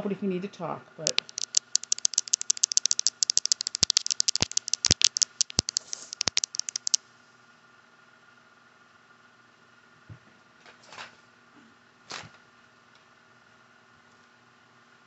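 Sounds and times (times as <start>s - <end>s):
fingernails tapping on a phone: 1.1s - 7.0s.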